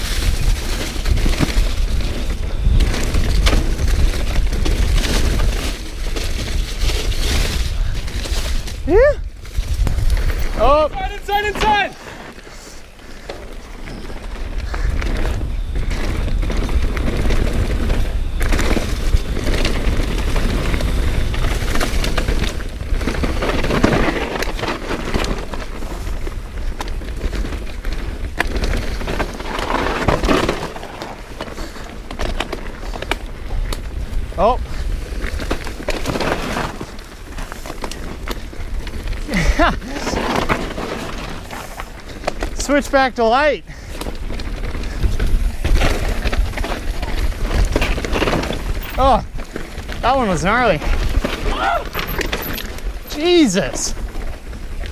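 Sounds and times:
wind buffeting microphone: 0:00.0 - 0:11.9, 0:32.8 - 0:36.6, 0:37.2 - 0:53.1
bike tyres crunching on dirt trail: 0:00.0 - 0:54.9.

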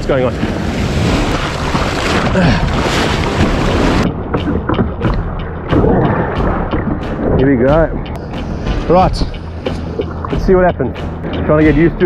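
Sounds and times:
surf and rushing water: 0:00.0 - 0:11.9
waves slapping a hull: 0:00.0 - 0:12.0
paddle splashes: 0:00.4 - 0:07.1.

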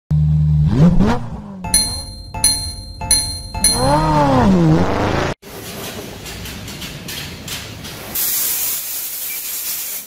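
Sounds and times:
engine revving: 0:00.2 - 0:01.6, 0:03.7 - 0:05.4
bright chime dings: 0:01.7 - 0:04.4.

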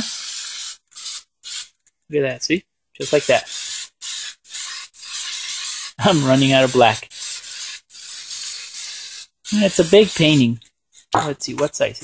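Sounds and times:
spray paint can hissing: 0:00.0 - 0:01.8, 0:03.0 - 0:10.6.

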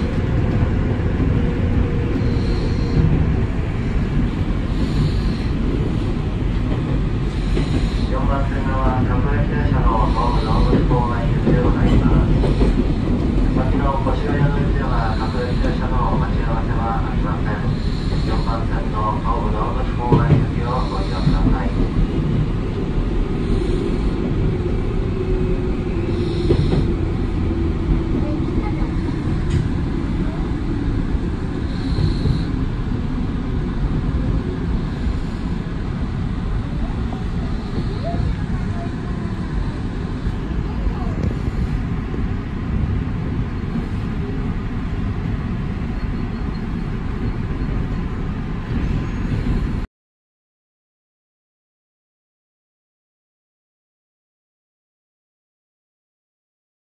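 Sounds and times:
train wheels rumbling on rail: 0:00.0 - 0:49.9.

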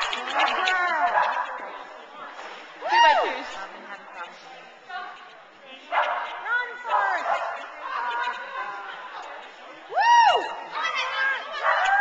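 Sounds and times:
dog barking: 0:00.4 - 0:01.6, 0:05.9 - 0:07.6.

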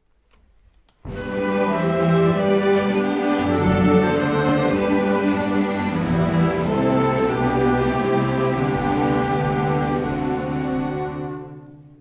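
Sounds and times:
string orchestra sustained chord: 0:01.1 - 0:12.0.

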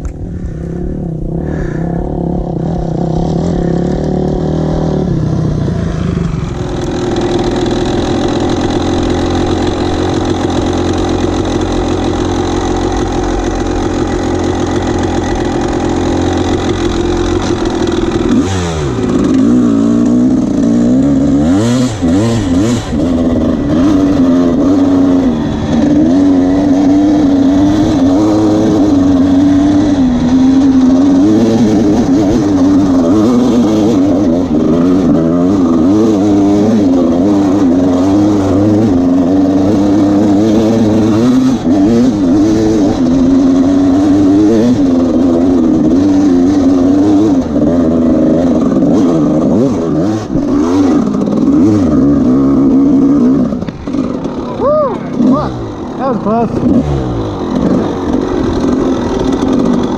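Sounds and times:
dirt bike engine on trail: 0:00.0 - 0:59.9.

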